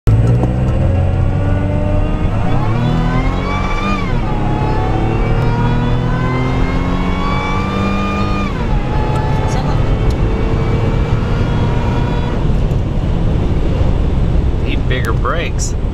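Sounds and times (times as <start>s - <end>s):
truck engine accelerating: 0.0s - 15.9s.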